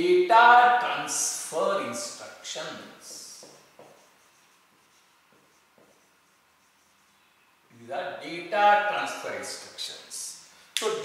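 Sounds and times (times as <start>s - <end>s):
marker scratching on whiteboard: 3.0s - 7.4s.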